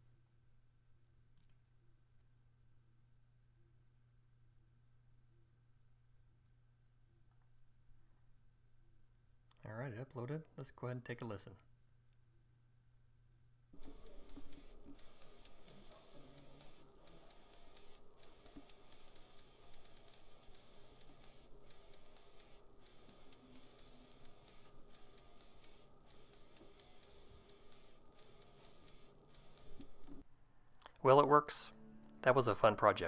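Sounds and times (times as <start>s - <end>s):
faint music from small speaker: 13.8s - 30.3s.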